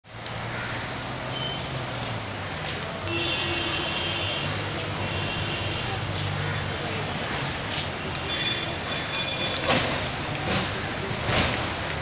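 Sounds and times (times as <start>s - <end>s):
street din: 0.0s - 12.0s
vehicle engines humming: 0.0s - 12.0s.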